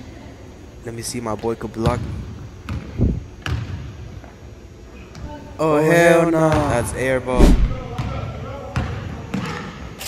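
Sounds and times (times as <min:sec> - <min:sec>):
basketball bouncing on wooden floor: 0:02.7 - 0:03.7, 0:07.8 - 0:08.2.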